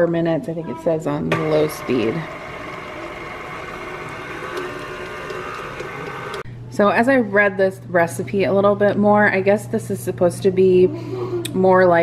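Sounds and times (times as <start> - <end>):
stand mixer kneading dough: 1.3 - 6.4.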